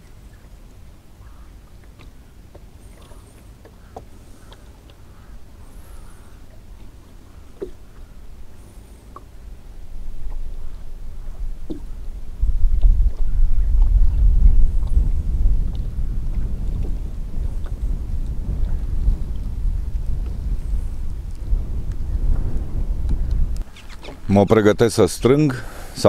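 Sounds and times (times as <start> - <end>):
wind buffeting microphone: 9.6 - 26.0.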